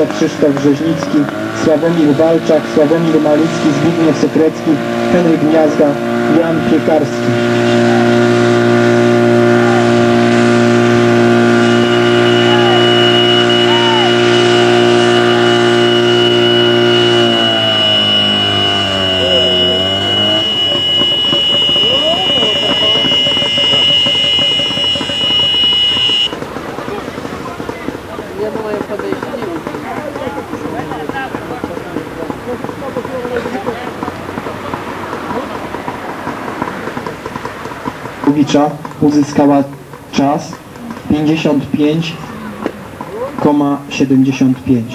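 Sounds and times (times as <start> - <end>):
high steady whine: 0.0 - 27.9
distant voices: 0.0 - 44.9
fire pump engine running: 0.0 - 44.9
outdoor noise: 0.0 - 44.9.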